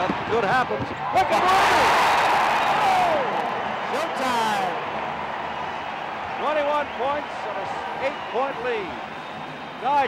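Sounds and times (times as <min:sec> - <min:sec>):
arena crowd cheering: 0:00.0 - 0:10.0.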